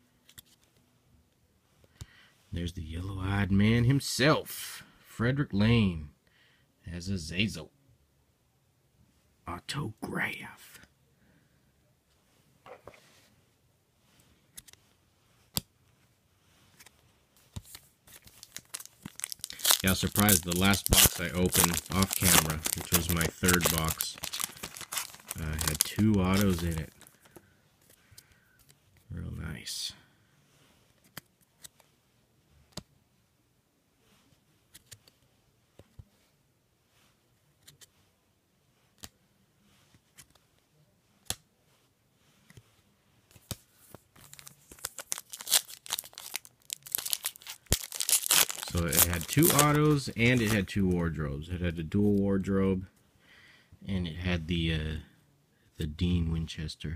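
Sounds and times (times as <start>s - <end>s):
plastic wrapper crinkling and tearing: 17.6s - 27.4s, 44.1s - 51.0s.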